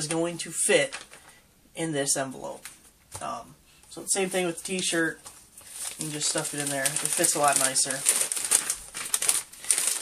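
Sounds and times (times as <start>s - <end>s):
plastic mailer crinkling: 0.0s - 1.4s, 4.2s - 10.0s.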